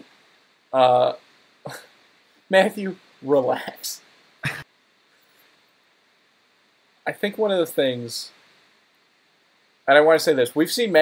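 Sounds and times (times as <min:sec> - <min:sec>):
faint room tone: 0:00.0 - 0:11.0.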